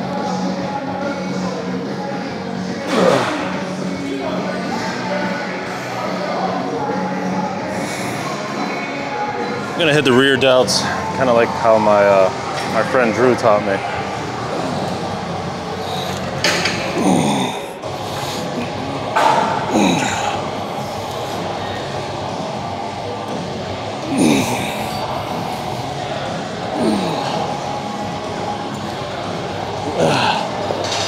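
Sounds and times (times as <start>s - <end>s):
gym room noise: 0.0s - 31.0s.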